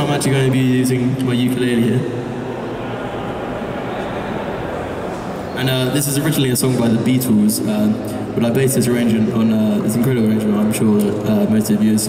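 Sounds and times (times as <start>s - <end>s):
exhibition hall din: 0.0s - 12.0s.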